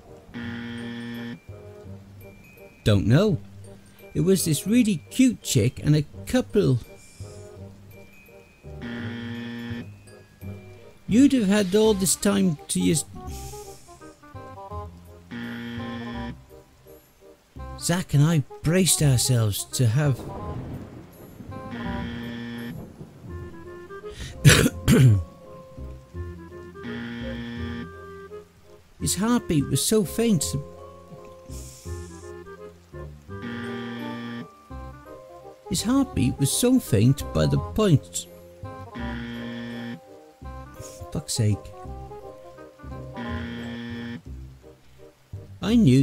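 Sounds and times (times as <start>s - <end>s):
dark ambient music: 0.0s - 46.0s
person coughing: 24.2s - 25.3s.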